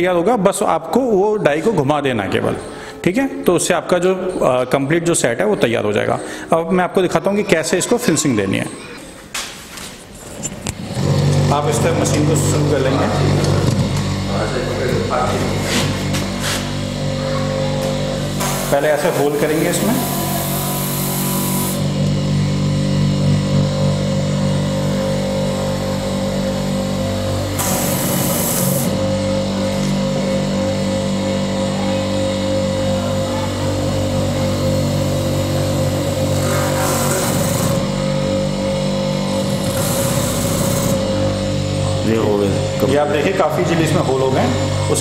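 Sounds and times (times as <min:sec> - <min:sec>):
electric motor humming: 0:10.4 - 0:45.0
drill bit grinding into rubber: 0:18.4 - 0:21.9, 0:27.5 - 0:29.0, 0:36.1 - 0:38.0, 0:39.3 - 0:41.2.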